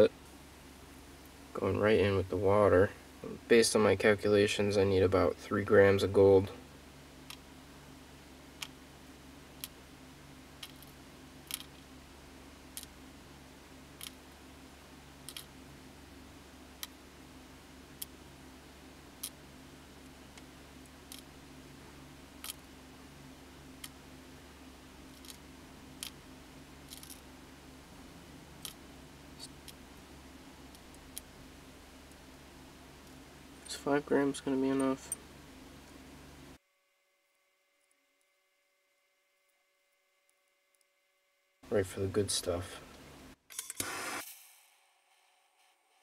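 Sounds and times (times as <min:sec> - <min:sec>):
faint steady hum: 0:00.0 - 0:46.0.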